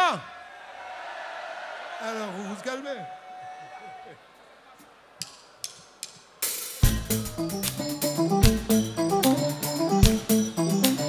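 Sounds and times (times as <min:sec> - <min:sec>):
live band with drum kit: 0:06.3 - 0:11.0
drumstick count-in clicks: 0:06.8 - 0:11.0.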